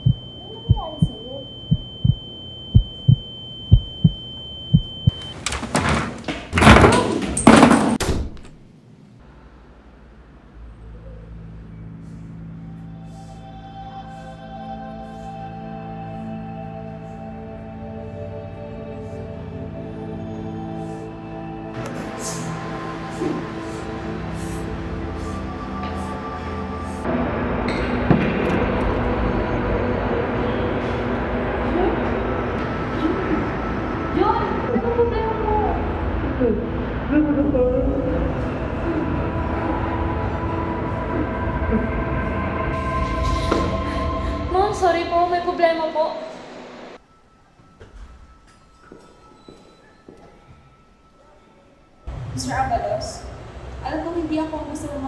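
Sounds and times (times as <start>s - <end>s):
heartbeat thuds: 0.0s - 5.2s
high ringing tone: 0.0s - 5.3s
banging and rattling at a door: 5.6s - 8.4s.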